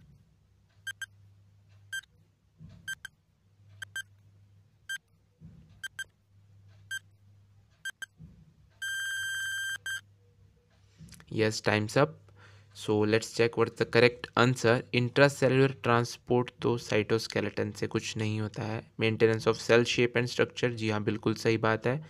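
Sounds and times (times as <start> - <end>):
long beep: 8.8 - 10.0.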